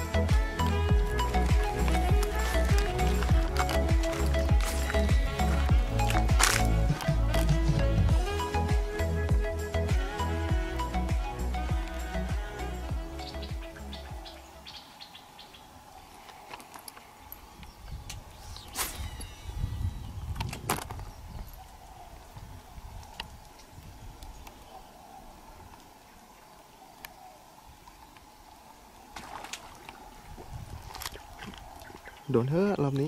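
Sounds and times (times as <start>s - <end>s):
background music: 0.0s - 14.8s.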